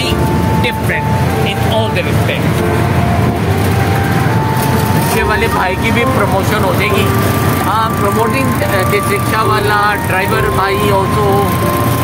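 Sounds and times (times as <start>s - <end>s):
rickshaw engine chugging: 0.0s - 12.0s
road noise: 0.0s - 12.0s.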